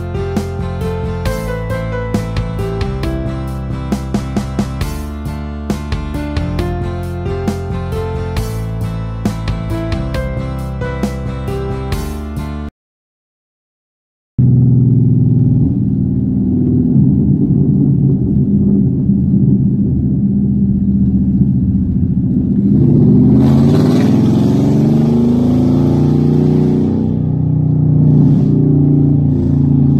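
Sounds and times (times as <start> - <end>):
rush of noise: 14.4 - 25.5, 26.6 - 29.9
car engine revving in cabin: 14.4 - 29.9.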